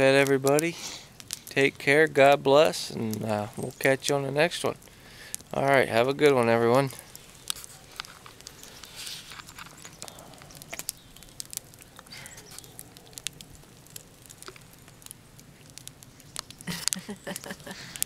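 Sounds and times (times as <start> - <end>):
campfire crackling and popping: 0.0 - 18.0.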